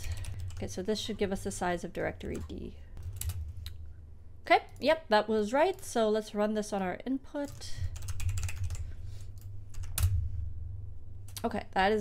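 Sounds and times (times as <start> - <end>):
typing on computer keyboard: 8.0 - 8.8.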